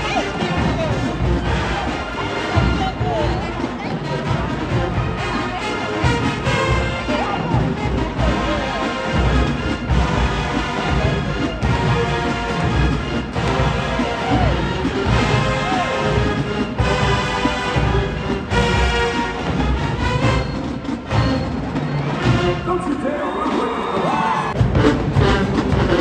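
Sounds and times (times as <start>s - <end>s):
marching band playing: 0.0s - 26.0s.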